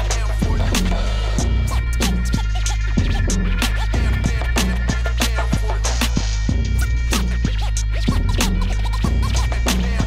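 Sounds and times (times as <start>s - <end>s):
hip hop beat with bass: 0.0s - 10.0s
turntable scratching: 0.0s - 10.0s.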